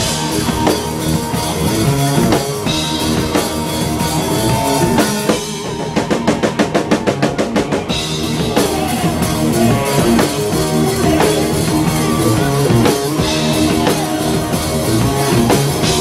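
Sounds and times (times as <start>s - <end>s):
fast drum strokes: 0.0s - 16.0s
live rock band playing: 0.0s - 16.0s.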